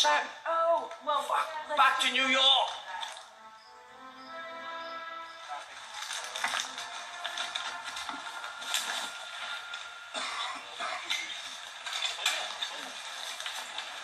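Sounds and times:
background music from television: 0.0s - 14.0s.

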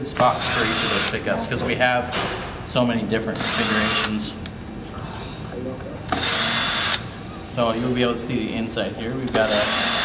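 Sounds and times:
cordless drill running: 6.2s - 7.0s, 9.5s - 10.0s.

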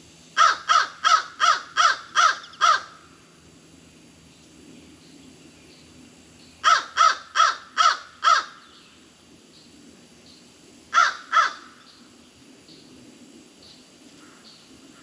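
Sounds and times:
crow cawing: 0.4s - 3.0s, 6.6s - 8.6s, 10.9s - 11.8s.

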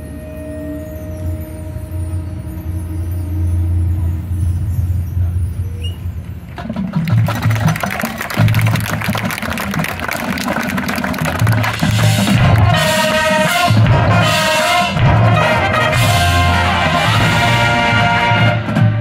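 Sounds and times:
marching band playing: 6.5s - 19.0s
drum hits: 11.3s - 13.0s
pulsing low brass: 11.7s - 19.0s.

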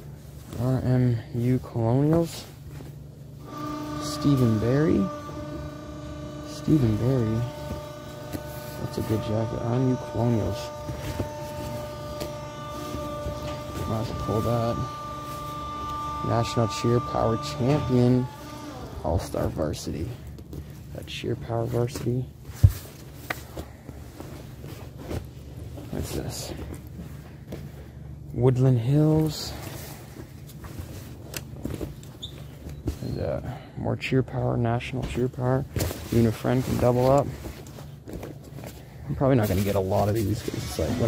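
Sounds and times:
clothes rustling: 0.0s - 3.4s, 10.1s - 16.4s, 18.5s - 28.2s, 29.2s - 33.2s, 35.0s - 41.0s
steady low hum: 0.0s - 41.0s
hum of held tones: 3.1s - 20.6s.

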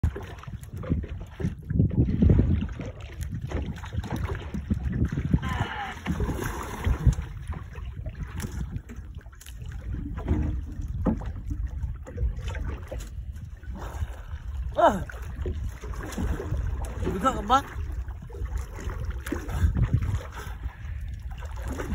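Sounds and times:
water lapping against boat hull: 0.0s - 21.9s
wind buffeting microphone: 0.0s - 21.9s
knocks from boat: 9.8s - 13.0s.

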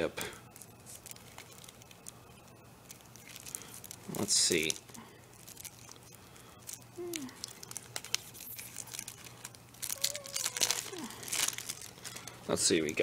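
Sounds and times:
plastic wrap crinkling: 0.0s - 13.0s.

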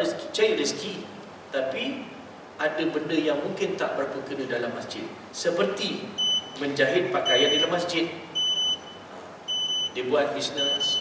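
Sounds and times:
electronic beeper beeping: 7.2s - 7.8s, 8.4s - 10.0s, 10.6s - 11.0s.

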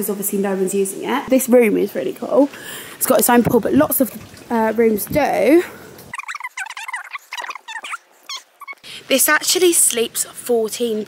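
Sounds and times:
high-pitched animal calls: 6.1s - 8.9s.

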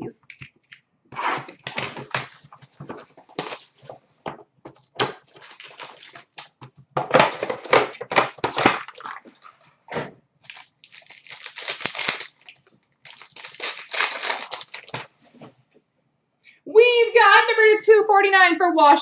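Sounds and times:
plastic wrapping crinkling and tearing: 0.3s - 4.0s, 4.8s - 9.7s, 10.4s - 15.3s.

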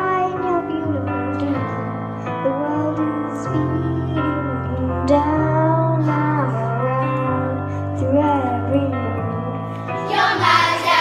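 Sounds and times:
girl singing a slow ballad: 0.0s - 10.0s
held accompaniment notes: 9.9s - 11.0s.

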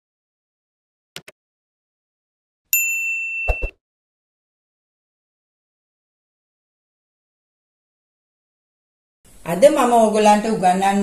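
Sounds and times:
notification bell ding: 2.8s - 3.8s.

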